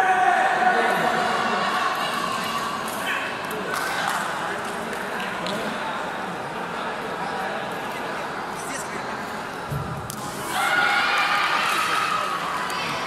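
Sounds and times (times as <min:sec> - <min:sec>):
mixed chatter: 0:00.0 - 0:13.0.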